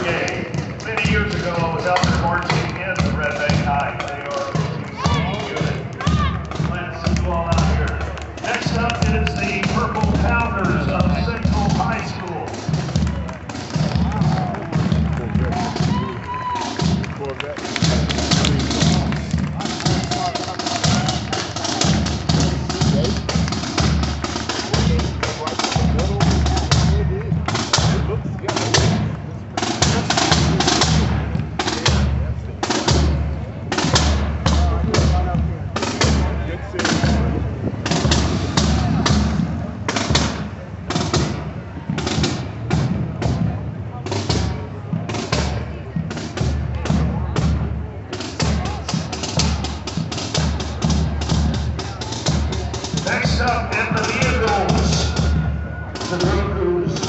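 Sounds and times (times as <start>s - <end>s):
bass drum strokes: 0.0s - 57.0s
snare drum strokes: 0.0s - 57.0s.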